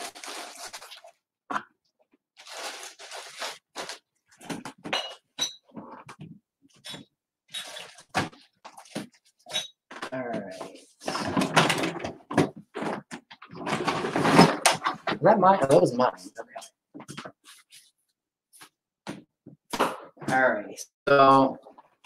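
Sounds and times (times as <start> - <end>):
objects clattering in plastic bin: 11.0 - 15.2.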